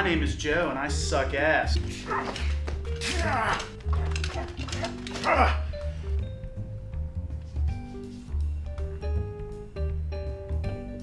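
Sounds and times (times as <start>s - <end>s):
background music with low beat: 0.0s - 11.0s
dog barking and yelping: 3.2s - 5.6s.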